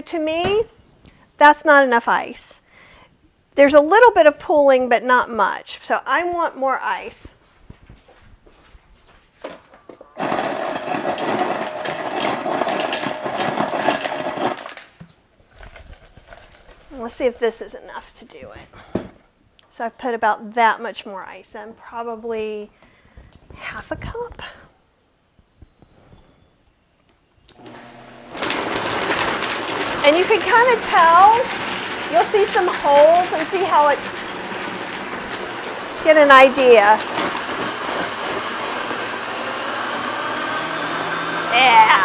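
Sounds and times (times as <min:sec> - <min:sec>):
blender motor blending ice: 0:10.2 - 0:14.9, 0:27.5 - 0:42.0.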